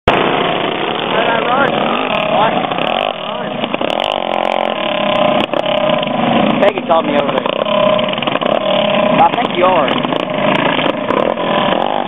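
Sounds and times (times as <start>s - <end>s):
racing karts passing by: 0.1s - 12.0s.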